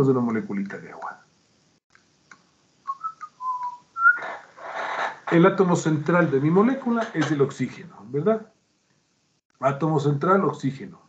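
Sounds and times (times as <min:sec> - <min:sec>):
person whistling: 0:02.9 - 0:04.2.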